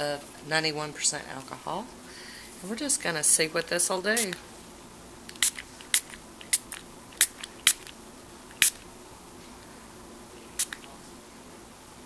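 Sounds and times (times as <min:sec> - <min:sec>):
spray bottle spritzing: 0:04.2 - 0:04.4, 0:05.3 - 0:08.8, 0:10.6 - 0:10.9.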